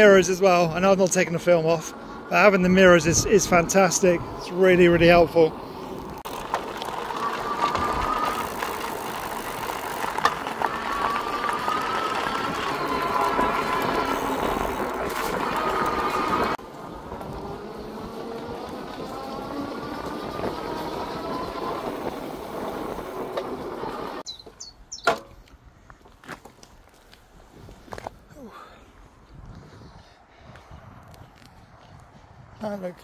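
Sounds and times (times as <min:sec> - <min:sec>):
tyre and wind noise: 0:01.8 - 0:33.0.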